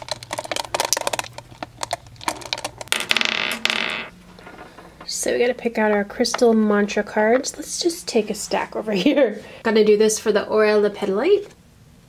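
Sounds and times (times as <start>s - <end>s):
stone spheres clicking: 0.0s - 4.1s.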